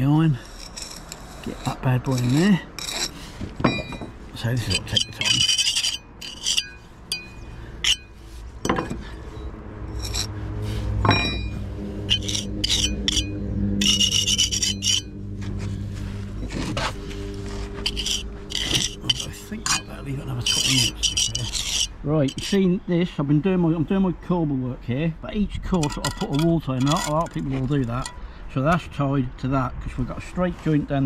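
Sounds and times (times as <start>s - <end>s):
trowel scraping mortar: 0.0s - 3.4s, 4.6s - 8.1s, 10.0s - 10.3s, 11.4s - 15.1s, 16.4s - 22.7s, 25.8s - 28.2s
steady low hum: 0.3s - 22.6s.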